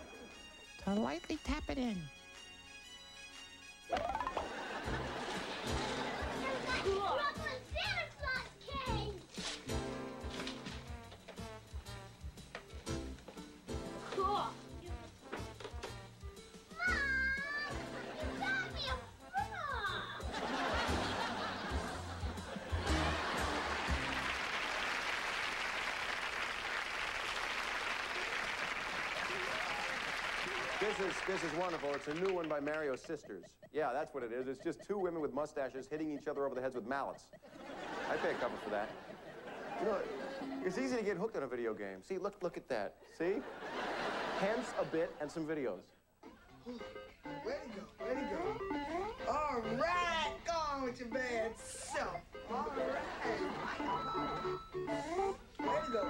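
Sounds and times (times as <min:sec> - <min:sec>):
background music: 0:00.0 - 0:24.8, 0:30.5 - 0:56.0
children's voices: 0:06.2 - 0:09.3, 0:16.8 - 0:20.2
audience applauding: 0:20.6 - 0:33.2.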